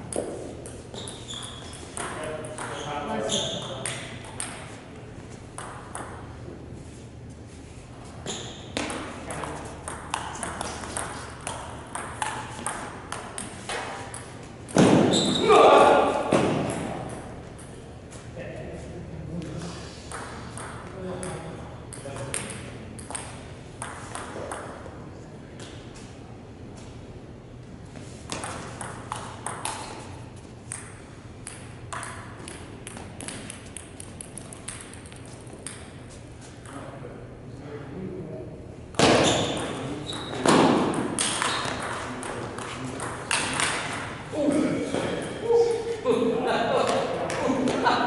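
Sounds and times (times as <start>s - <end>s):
table tennis ball on paddles: 0.0s - 4.8s, 5.5s - 6.3s, 8.2s - 15.4s, 20.1s - 24.9s, 28.2s - 36.8s, 38.9s - 45.4s
ball bouncing on floor: 0.1s - 4.8s, 5.6s - 6.2s, 8.2s - 15.4s, 20.1s - 24.8s, 28.3s - 30.0s, 30.7s - 36.0s, 38.9s - 44.0s
loud shout: 15.4s - 16.3s.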